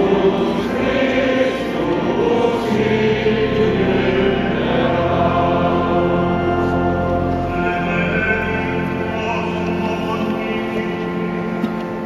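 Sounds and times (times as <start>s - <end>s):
choir singing in church: 0.0s - 12.0s.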